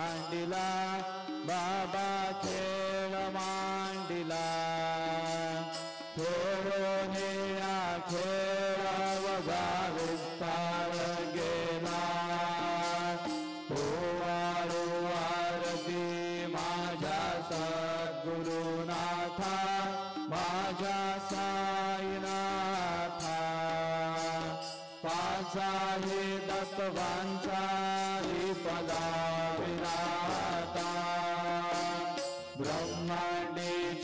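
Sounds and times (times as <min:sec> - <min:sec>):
devotional melody with held notes: 0:00.0 - 0:34.0.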